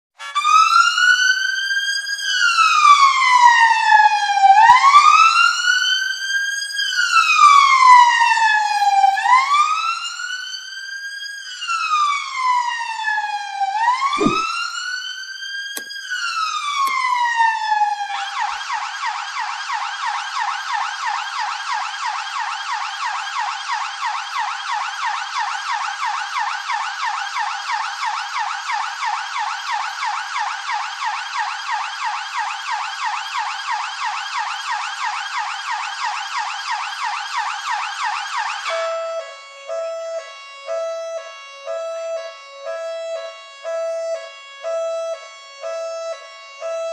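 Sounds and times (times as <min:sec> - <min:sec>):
toy police siren: 0:00.2 - 0:14.4, 0:16.8 - 0:46.9.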